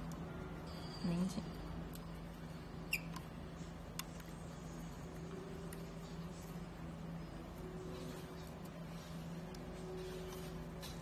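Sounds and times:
steady low hum: 0.0 - 11.0
screwdriver squeak: 2.8 - 3.2.

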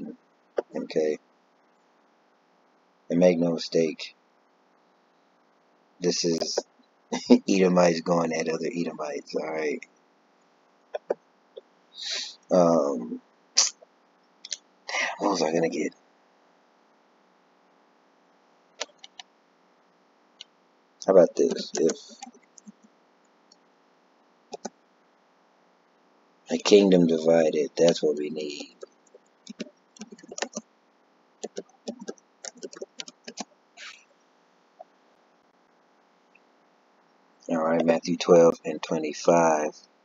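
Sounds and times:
keyboard typing: 18.8 - 19.2, 21.4 - 22.9, 24.5 - 24.7, 27.8 - 30.6, 31.4 - 33.9
sharp computer clicks: 18.8 - 19.3, 21.4 - 22.9, 24.5 - 24.8, 27.8 - 30.6, 31.4 - 34.0.

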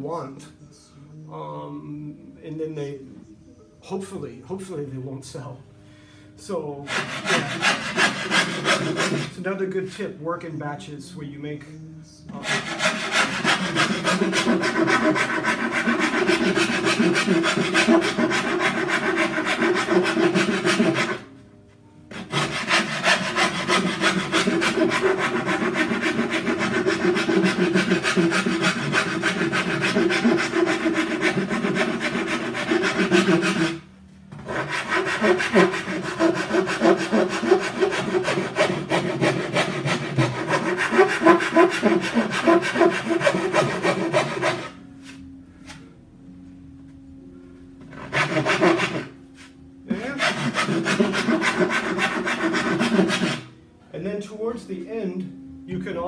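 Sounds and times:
hand file rasping on wood: 6.9 - 9.4, 12.4 - 21.3, 22.1 - 33.8, 34.4 - 44.8, 47.9 - 49.1, 49.9 - 53.5.

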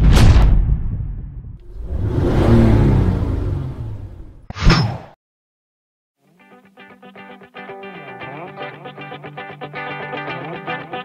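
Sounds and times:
low rumbling swoosh: 0.0 - 4.5.

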